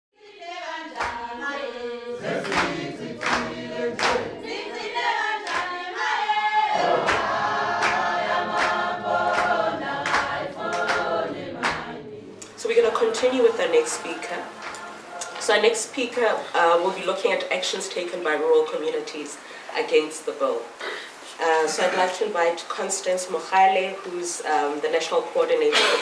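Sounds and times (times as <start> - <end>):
choir singing in harmony: 0.2 - 17.0
hand claps: 1.0 - 1.2, 2.2 - 4.4, 5.4 - 5.8, 7.0 - 12.5, 14.6 - 15.5.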